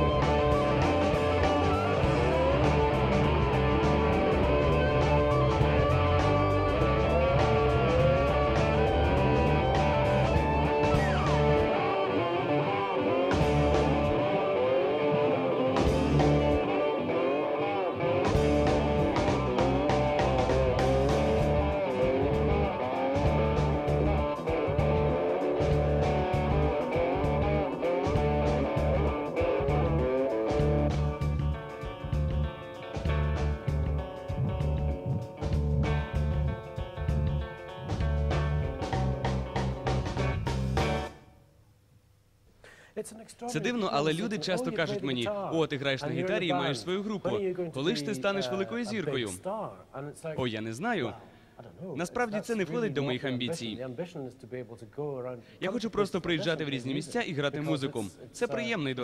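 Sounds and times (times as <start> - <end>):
drum kit: 0.0 - 17.4, 18.0 - 41.2
electric violin melody: 0.0 - 39.8
bass guitar: 0.0 - 41.3
electric guitar: 0.0 - 41.4.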